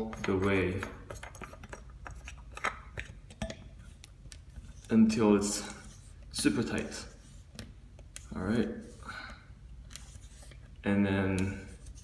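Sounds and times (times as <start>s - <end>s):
faint handling sounds: 0.0s - 12.0s.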